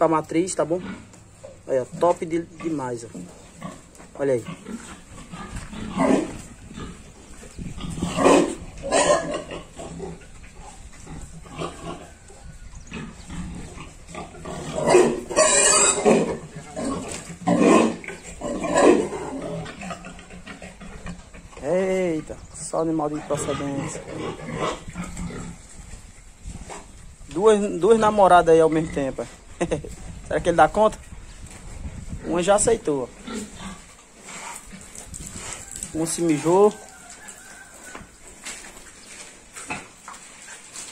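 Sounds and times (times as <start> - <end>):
pigs grunting and calling: 0.0 - 27.2, 27.8 - 30.2, 32.0 - 40.9
faint pig sounds: 33.2 - 38.6.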